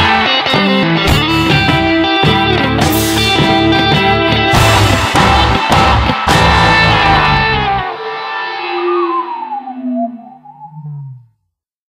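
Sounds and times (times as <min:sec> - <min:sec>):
blues-rock guitar notes: 0:00.0 - 0:11.2.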